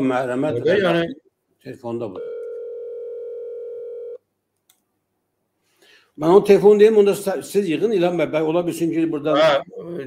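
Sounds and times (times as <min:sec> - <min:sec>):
phone ringing tone: 0:02.2 - 0:04.2.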